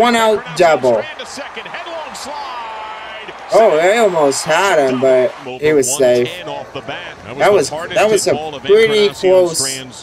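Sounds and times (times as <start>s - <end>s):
sports announcer on tv: 0.0s - 10.0s.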